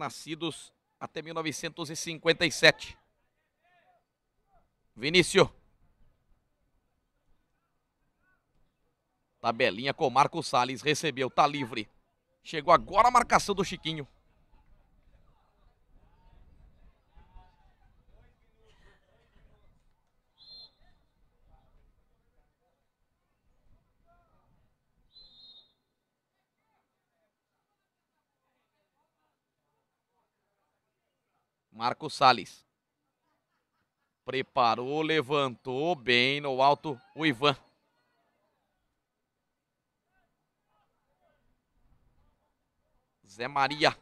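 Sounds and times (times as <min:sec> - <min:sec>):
faint distant voices: 0:13.7 - 0:24.9
referee's whistle blasts: 0:20.4 - 0:20.9, 0:25.1 - 0:25.9.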